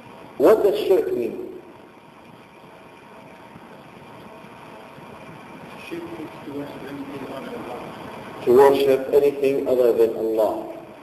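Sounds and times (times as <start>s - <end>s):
faint hum: 0.0s - 11.0s
recording hiss: 0.0s - 11.0s.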